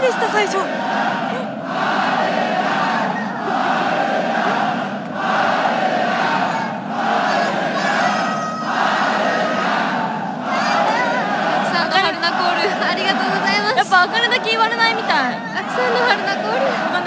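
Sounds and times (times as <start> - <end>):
audience chanting in unison: 0.0 - 17.0.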